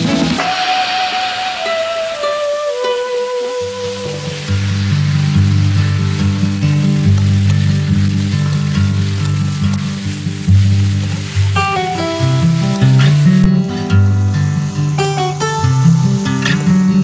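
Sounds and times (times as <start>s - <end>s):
background music with low notes: 0.0s - 8.2s
vegetables sizzling in hot oil: 0.0s - 13.5s.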